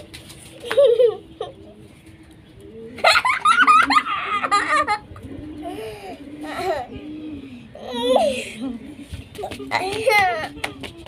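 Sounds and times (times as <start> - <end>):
people laughing and giggling: 0.6 - 1.6, 3.0 - 6.9, 8.0 - 11.0.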